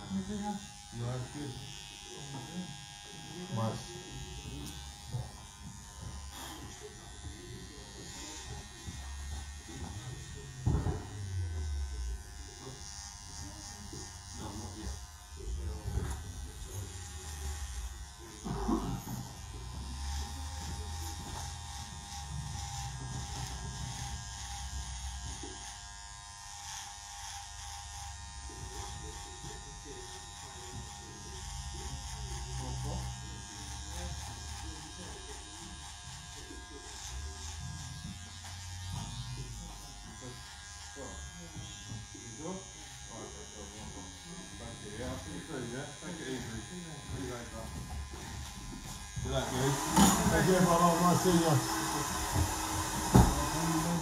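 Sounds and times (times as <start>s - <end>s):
electric hair clipper buzzing: 0.0s - 54.0s.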